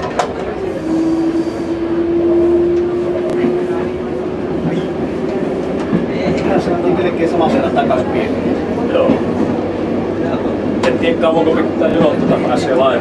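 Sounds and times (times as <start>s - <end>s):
railbus rumbling on track: 0.0s - 13.0s.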